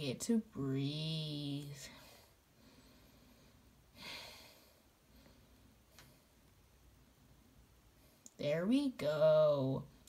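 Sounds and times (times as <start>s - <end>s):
person breathing: 1.8s - 6.4s.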